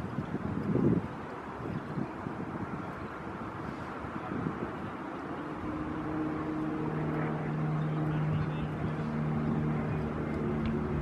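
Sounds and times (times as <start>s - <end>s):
low engine drone: 3.1s - 11.0s.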